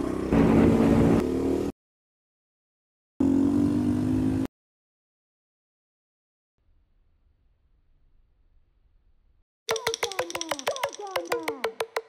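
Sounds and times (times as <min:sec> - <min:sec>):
motorcycle engine revving: 0:00.0 - 0:01.7, 0:03.2 - 0:04.5.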